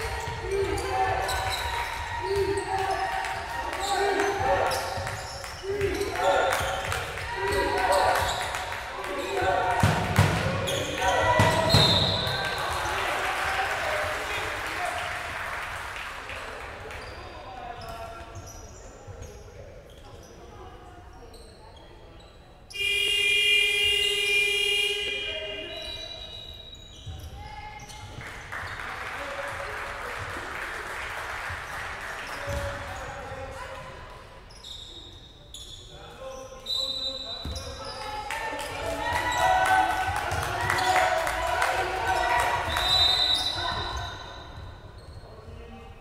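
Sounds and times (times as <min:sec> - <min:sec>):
sneakers squeaking on wooden court: 0:00.0 - 0:03.1, 0:03.7 - 0:12.9, 0:16.9 - 0:22.8, 0:25.7 - 0:28.9, 0:32.3 - 0:38.2, 0:42.0 - 0:46.0
players calling out: 0:00.0 - 0:15.2, 0:37.4 - 0:45.6.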